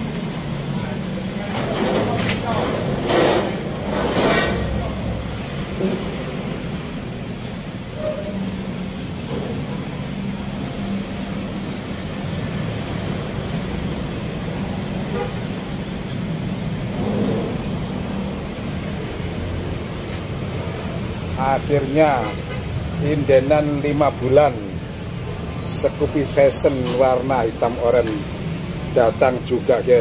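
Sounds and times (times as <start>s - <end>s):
motor vehicles rumbling: 0.0s - 30.0s.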